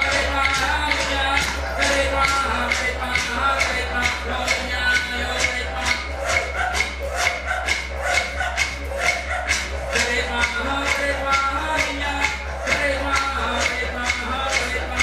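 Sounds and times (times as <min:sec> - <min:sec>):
beat of sharp clicks: 0:00.0 - 0:15.0
man singing: 0:00.0 - 0:15.0.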